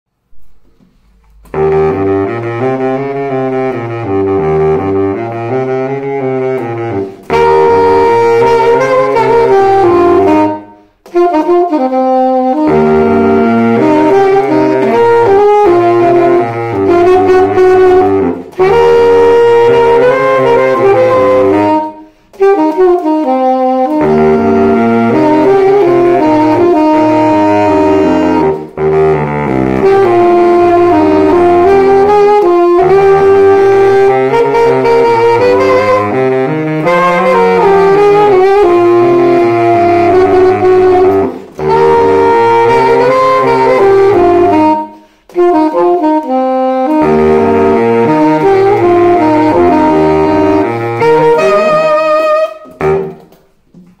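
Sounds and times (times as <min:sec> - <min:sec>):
alto saxophone melody: 0:00.3 - 0:54.0
baritone saxophone low notes: 0:00.4 - 0:54.0.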